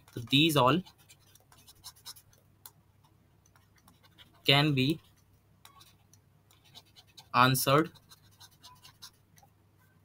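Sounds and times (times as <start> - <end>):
stylus scratching on tablet: 0.0 - 9.5.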